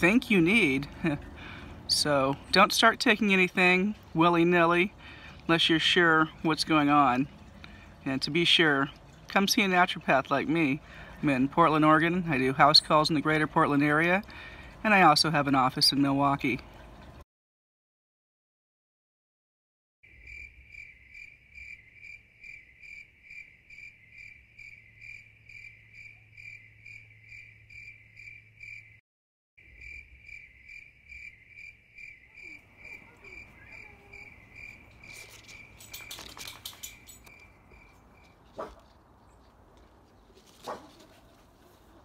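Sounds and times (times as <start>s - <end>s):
cricket chirping: 20.1s - 29.0s, 29.6s - 38.4s
rustling: 34.9s - 42.0s.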